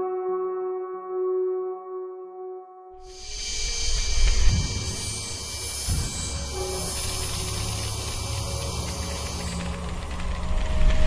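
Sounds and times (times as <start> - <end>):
high shimmering hiss: 3.0 - 11.0.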